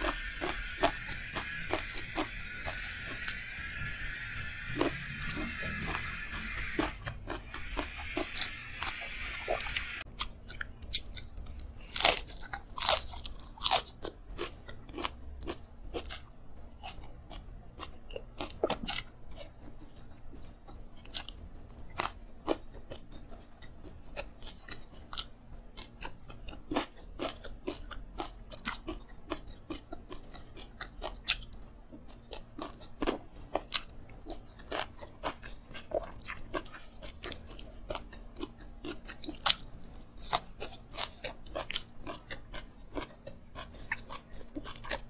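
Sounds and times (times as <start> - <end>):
wet mouth clicks: 0.0 - 11.7
chewing and crunching: 0.0 - 45.0.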